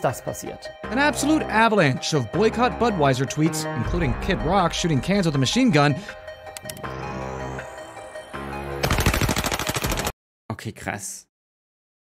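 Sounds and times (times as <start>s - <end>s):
music: 0.0s - 10.1s.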